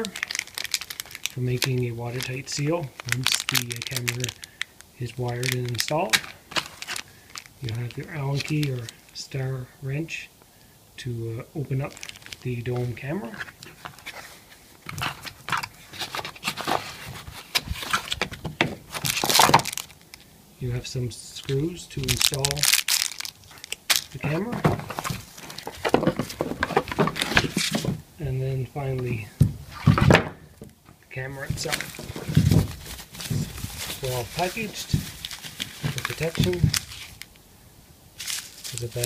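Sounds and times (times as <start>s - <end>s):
rummaging in cardboard box: 0.0s - 1.8s, 5.4s - 8.9s, 13.3s - 19.9s, 22.0s - 28.0s, 31.4s - 37.2s
plastic bags crinkling: 0.0s - 9.2s, 11.7s - 20.3s, 21.3s - 28.0s, 31.3s - 37.4s, 38.2s - 39.0s.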